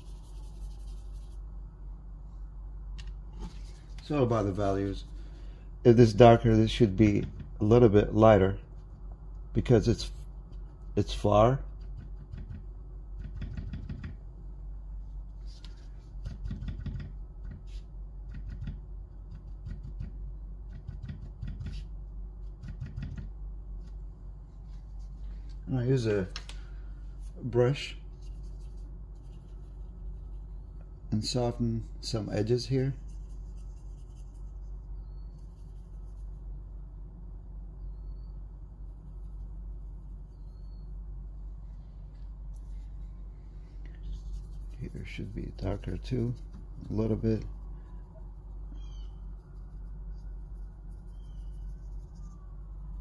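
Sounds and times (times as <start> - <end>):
low background hum: 0.0 - 53.0
hand tapping and rubbing paper: 11.7 - 14.2, 15.4 - 24.0
faint high-pitched chirps: 34.8 - 35.8, 37.7 - 38.6, 40.2 - 41.2, 47.6 - 53.0.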